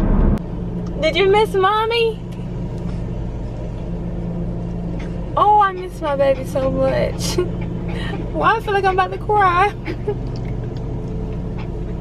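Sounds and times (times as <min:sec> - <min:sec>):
car idling low hum: 0:00.0 - 0:12.0.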